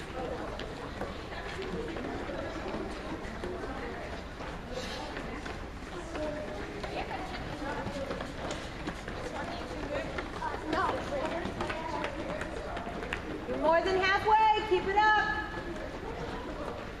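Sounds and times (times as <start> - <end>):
children chattering: 0.0 - 17.0
children jogging on gym floor: 0.0 - 17.0.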